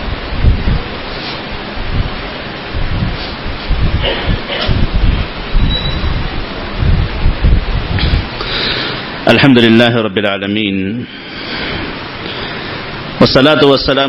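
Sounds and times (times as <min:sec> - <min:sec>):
steady hiss: 0:00.0 - 0:14.0
microphone handling noise: 0:00.3 - 0:08.6.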